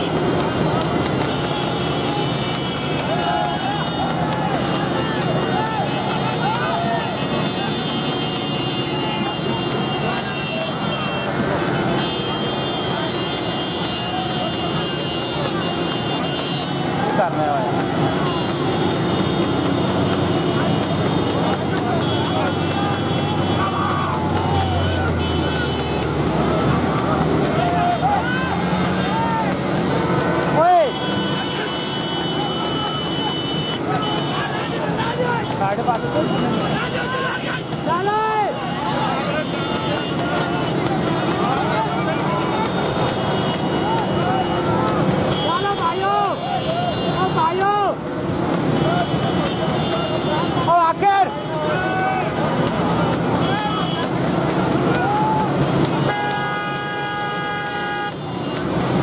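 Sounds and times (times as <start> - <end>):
motorcycle engines running: 0.0 - 59.0
men shouting: 1.2 - 19.1, 20.2 - 48.0, 48.6 - 58.2.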